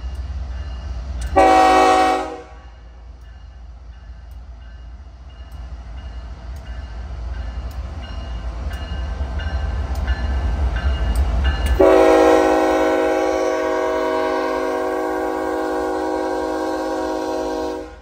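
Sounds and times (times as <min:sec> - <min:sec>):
diesel locomotives rumbling: 0:00.0 - 0:18.0
locomotive air horn chord: 0:01.4 - 0:02.7, 0:11.8 - 0:18.0.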